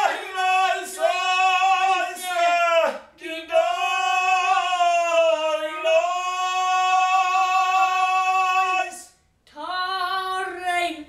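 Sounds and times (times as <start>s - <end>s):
boy singing: 9.5s - 11.0s.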